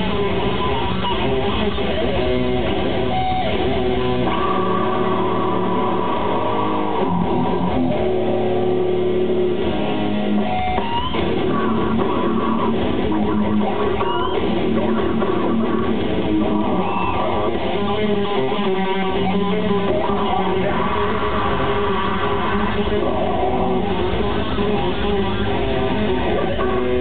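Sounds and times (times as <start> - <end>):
grindcore band playing: 0.0 - 27.0
held guitar notes ringing: 0.0 - 27.0.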